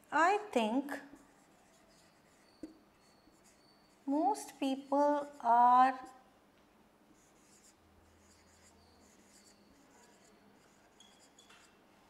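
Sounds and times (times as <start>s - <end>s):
marker pen on whiteboard: 0.2s - 6.2s, 7.2s - 11.8s.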